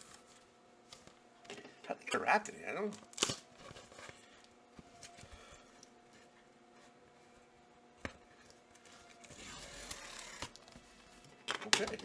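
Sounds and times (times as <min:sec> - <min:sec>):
tape tearing: 0:02.9 - 0:03.7, 0:09.1 - 0:10.8.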